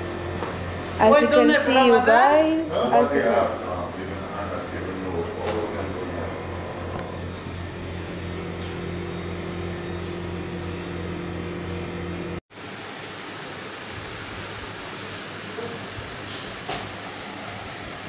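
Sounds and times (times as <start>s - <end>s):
higher hum: 0.0s - 12.4s
low mechanical hum: 0.0s - 18.0s.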